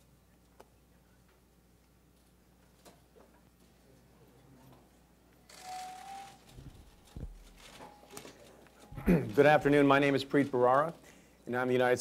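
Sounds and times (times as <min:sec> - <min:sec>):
low thumps: 0:06.6 - 0:07.5.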